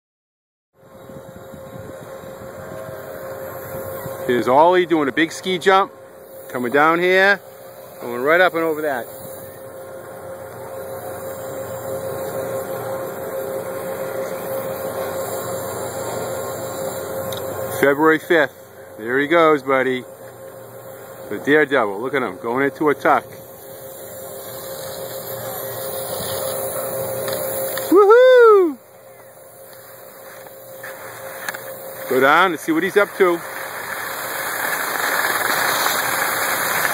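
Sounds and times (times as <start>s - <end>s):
machine hum and hiss: 0.8s - 36.9s
mid-pitched whine: 0.8s - 36.9s.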